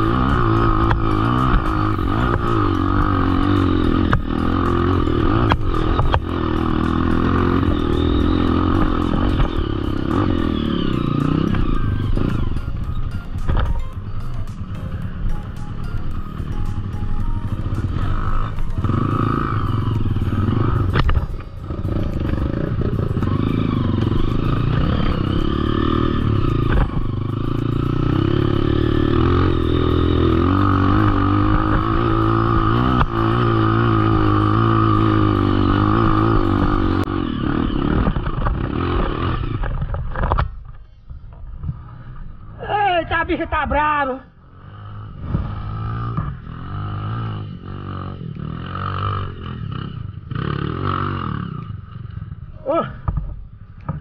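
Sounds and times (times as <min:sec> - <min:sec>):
dirt bike engine revving: 0:00.0 - 0:40.6, 0:41.6 - 0:54.0.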